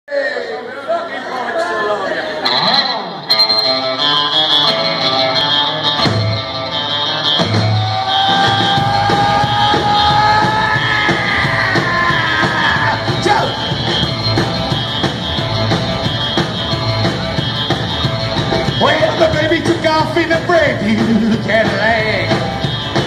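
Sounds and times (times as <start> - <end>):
live rockabilly band playing: 2.2 - 23.0
person shouting: 8.1 - 13.6.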